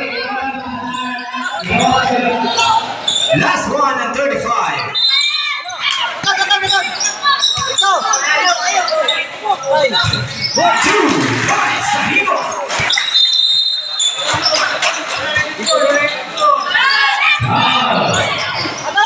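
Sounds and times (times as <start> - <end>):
people calling out: 4.8 - 19.0.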